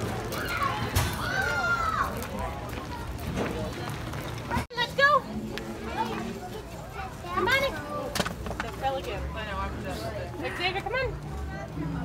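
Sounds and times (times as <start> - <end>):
people and children chattering: 0.0 - 12.0.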